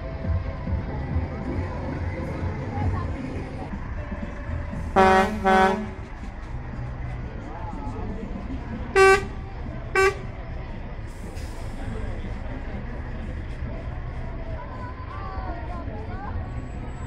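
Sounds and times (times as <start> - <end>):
lorry air horn blasts: 5.0 - 6.0, 9.0 - 9.4, 10.0 - 10.3
short higher horn toots: 5.0 - 6.0, 9.0 - 9.4, 10.0 - 10.3.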